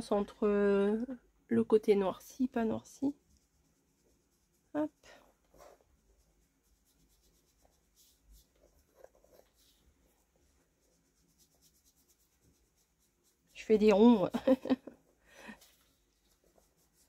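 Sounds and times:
inking tool rubbing on paper: 0:02.8 - 0:14.4, 0:15.6 - 0:17.0.

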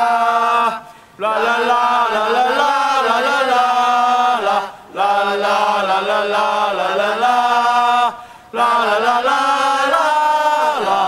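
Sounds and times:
voices chanting a cheer song: 0:00.0 - 0:11.0.

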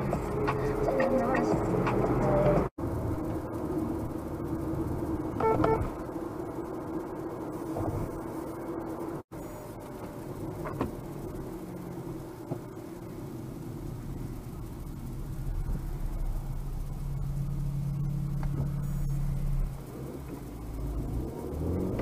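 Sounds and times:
car engine and road rumble: 0:00.0 - 0:22.0.

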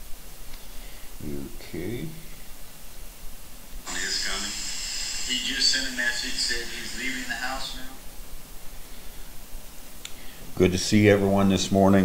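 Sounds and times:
faint hiss: 0:00.0 - 0:12.0
steady low hum: 0:00.0 - 0:12.0
man speaking: 0:01.2 - 0:02.3, 0:03.9 - 0:08.0, 0:10.5 - 0:12.0.

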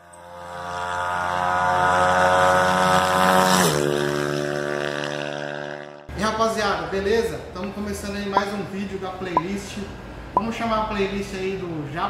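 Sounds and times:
engine at high revs: 0:00.0 - 0:06.1.

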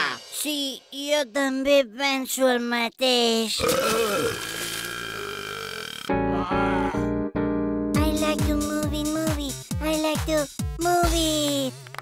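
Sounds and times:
cartoon vomiting retch: 0:03.6 - 0:07.1
keyboard music with chords: 0:06.1 - 0:12.0.

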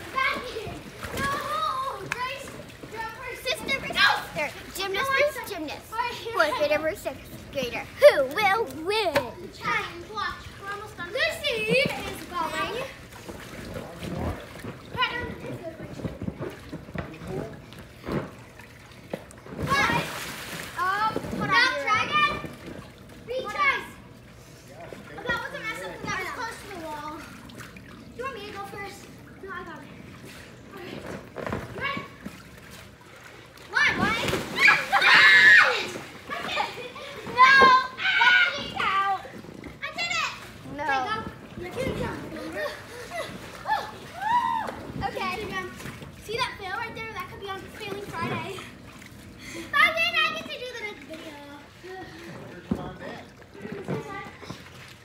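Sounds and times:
water splashing: 0:00.0 - 0:55.0
children shouting and squealing: 0:33.7 - 0:40.5, 0:41.8 - 0:45.3.

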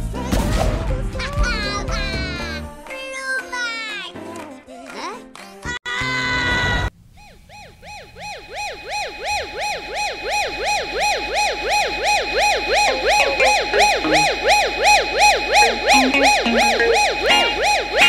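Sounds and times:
siren sweeping up and down: 0:07.5 - 0:18.0
steady low tone: 0:11.6 - 0:18.0.

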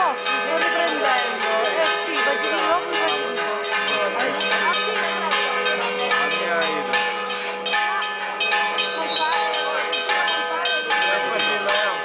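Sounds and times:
church bells pealing: 0:00.0 - 0:12.0.

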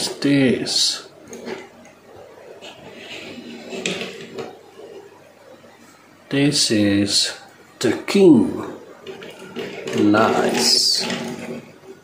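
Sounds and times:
toy car wheels rolling on table: 0:02.6 - 0:05.1, 0:08.6 - 0:11.8.

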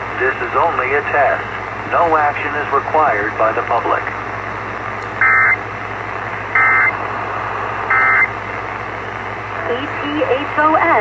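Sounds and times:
radio hiss: 0:00.0 - 0:11.0
harsh buzzy data bursts: 0:06.5 - 0:07.0, 0:07.8 - 0:08.4.

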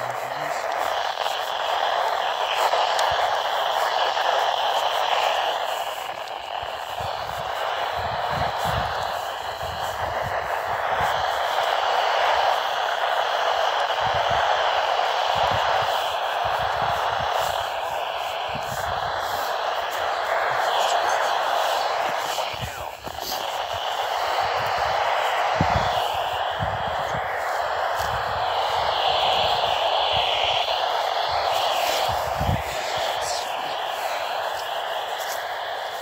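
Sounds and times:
faint wavering radio signal: 0:00.0 - 0:36.0
radio static hiss: 0:00.0 - 0:36.0.

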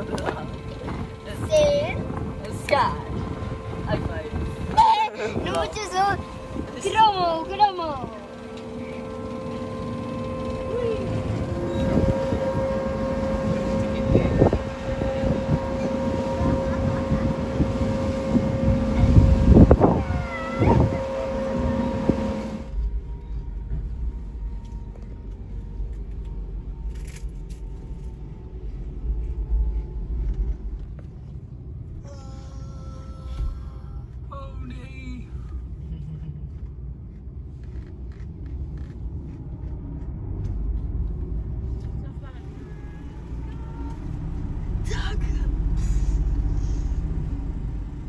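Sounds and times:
deep low rumble: 0:00.0 - 0:48.0
ship engines droning: 0:00.0 - 0:48.0.

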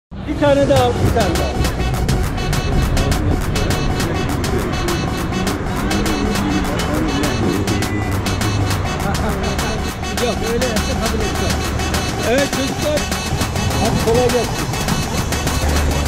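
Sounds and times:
city traffic noise: 0:00.1 - 0:16.0
voices: 0:00.2 - 0:16.0
music with fast beat: 0:00.3 - 0:16.0.

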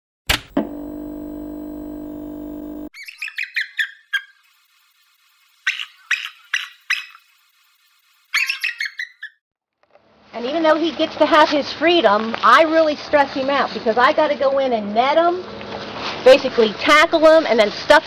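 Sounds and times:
click: 0:00.3 - 0:02.9
steady held tone: 0:00.3 - 0:02.9
eagle chittering chirps: 0:03.0 - 0:09.4.

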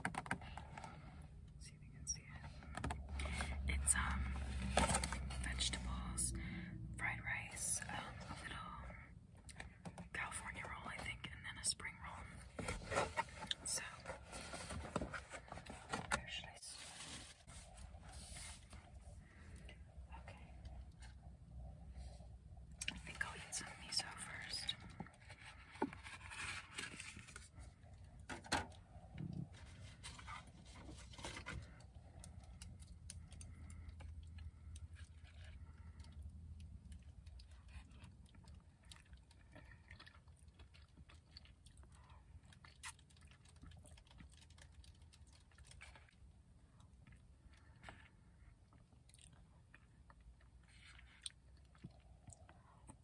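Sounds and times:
woman whispering close to microphone: 0:01.6 - 0:12.7, 0:13.4 - 0:14.3, 0:15.9 - 0:17.1, 0:20.0 - 0:21.0, 0:22.8 - 0:25.1.

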